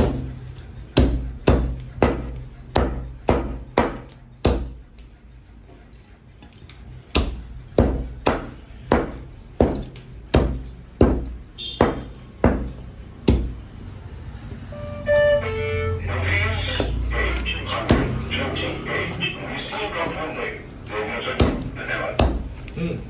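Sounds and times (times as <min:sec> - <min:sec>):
cleaver chopping on wooden block: 0:00.0 - 0:00.3, 0:00.9 - 0:04.8, 0:07.1 - 0:13.6, 0:21.4 - 0:22.7.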